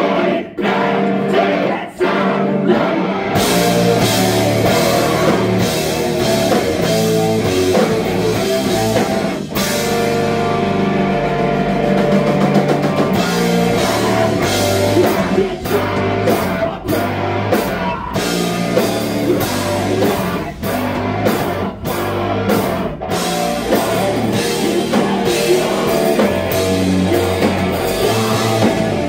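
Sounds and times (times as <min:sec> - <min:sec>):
punk band playing: 0:00.0 - 0:29.0.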